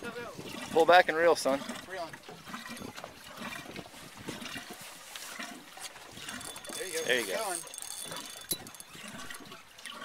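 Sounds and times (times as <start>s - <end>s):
water sloshing against boat: 0.0s - 10.0s.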